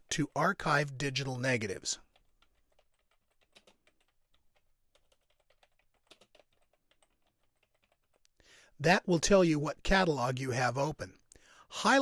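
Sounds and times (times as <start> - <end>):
faint typing on a keyboard: 2.0 - 8.4.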